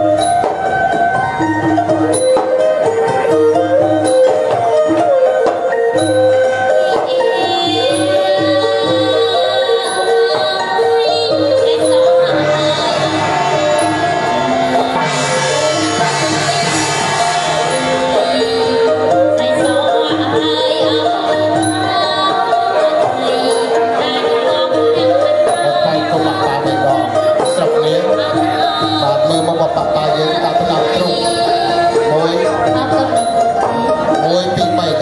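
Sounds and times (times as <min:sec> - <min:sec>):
wedding music with held notes: 0:00.0 - 0:35.0
woman singing into microphone: 0:06.5 - 0:35.0.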